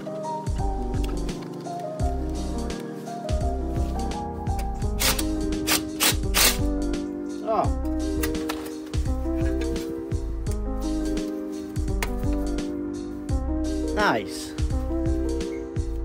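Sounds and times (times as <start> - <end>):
background music with a beat: 0.0 - 16.0.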